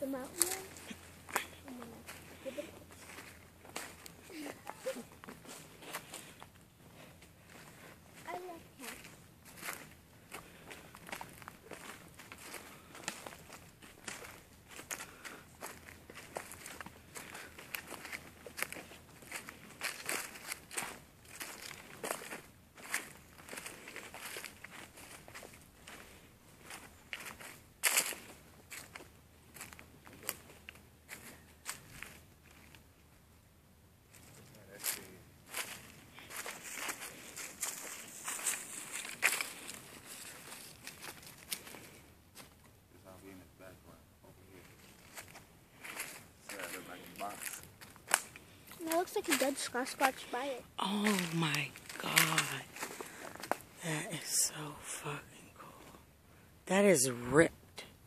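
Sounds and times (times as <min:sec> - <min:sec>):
footsteps crunching dry leaves: 0:00.0 - 0:32.8, 0:34.1 - 0:42.5, 0:44.6 - 0:55.8.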